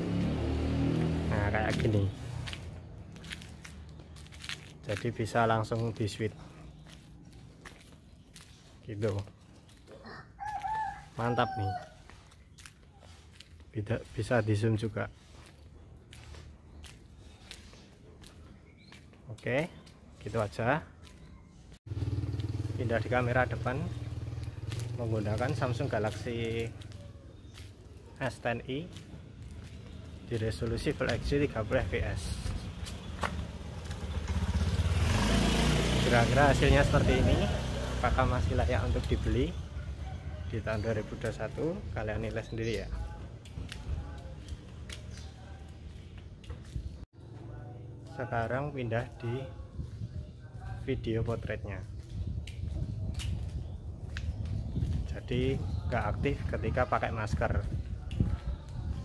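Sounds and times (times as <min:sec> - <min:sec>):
rooster crowing: 0:10.0 - 0:12.1, 0:39.8 - 0:40.6
motorcycle engine rumble: 0:21.8 - 0:48.3.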